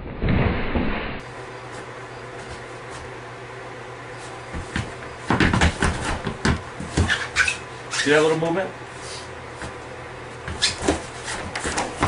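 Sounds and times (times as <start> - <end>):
knocks and thumps on floor: 4.5 - 7.1.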